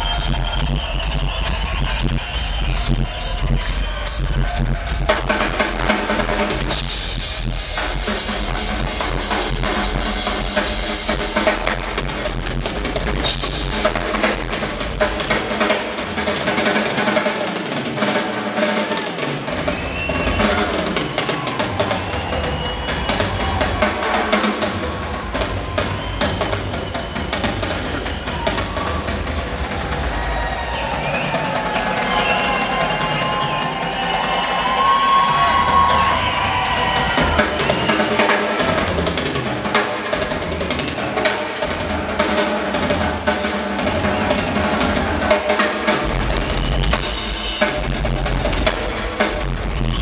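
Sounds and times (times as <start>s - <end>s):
rock drum kit playing: 0.0s - 50.0s.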